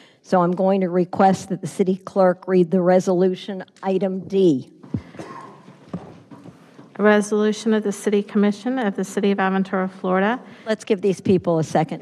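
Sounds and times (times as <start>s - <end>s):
bags and clothing rustling: 4.8s - 7.2s
people shuffling: 4.8s - 8.5s.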